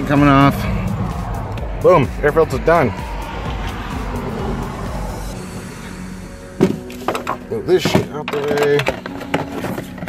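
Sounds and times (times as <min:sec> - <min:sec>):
steady low rumble: 0:00.0 - 0:07.7
quiet background music: 0:00.0 - 0:10.0.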